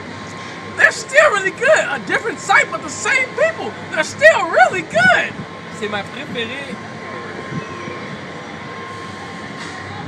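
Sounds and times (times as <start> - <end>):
faint high hum: 0.0 - 10.0
steady background noise: 0.0 - 10.0.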